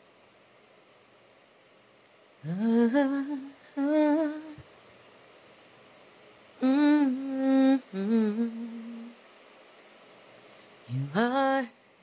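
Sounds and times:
woman humming: 2.4s - 4.6s, 6.6s - 9.2s.

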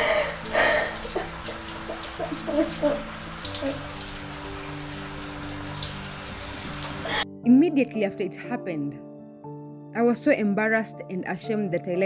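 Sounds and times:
woman sobbing: 0.0s - 3.8s
shower water falling: 0.0s - 7.2s.

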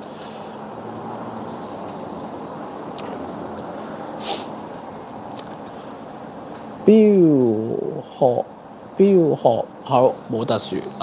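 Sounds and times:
room noise hum and hiss: 0.0s - 11.0s.

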